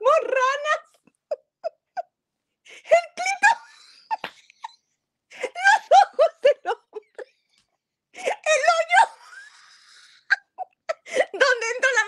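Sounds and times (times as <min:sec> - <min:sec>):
woman laughing hard: 0:02.8 - 0:07.6, 0:08.2 - 0:11.4.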